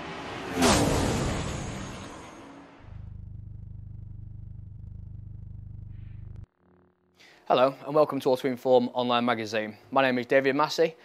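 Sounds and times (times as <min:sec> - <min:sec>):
low pulsing rumble: 0:02.8 - 0:06.9.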